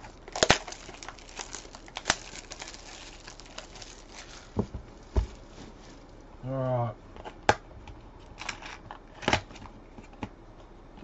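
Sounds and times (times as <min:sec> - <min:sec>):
wrapper and cards rustling: 0:00.0 - 0:06.2.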